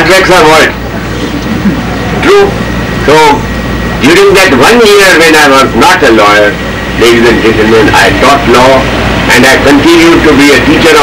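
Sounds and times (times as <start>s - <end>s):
man speaking over loudspeaker: 0.0s - 0.8s, 2.2s - 11.0s
sound system hum and hiss: 0.0s - 11.0s.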